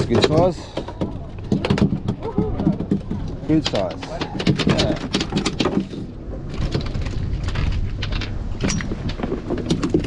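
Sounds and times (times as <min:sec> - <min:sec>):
sharp clicks and knocks: 0:00.0 - 0:10.0.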